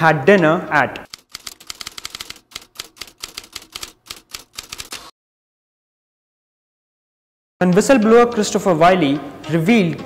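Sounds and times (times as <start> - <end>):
typewriter keys clacking: 1.1 - 5.1.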